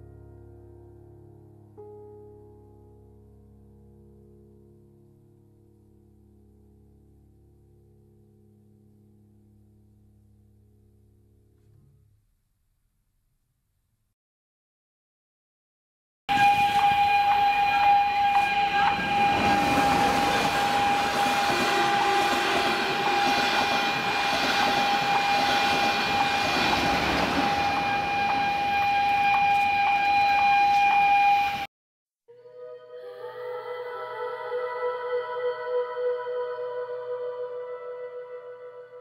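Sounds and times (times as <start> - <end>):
passenger train running past: 16.3 - 31.7
steady high-pitched tone: 16.3 - 31.7.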